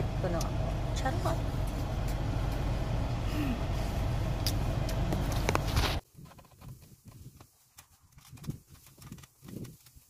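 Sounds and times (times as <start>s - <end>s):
car engine idling: 0.0s - 6.0s.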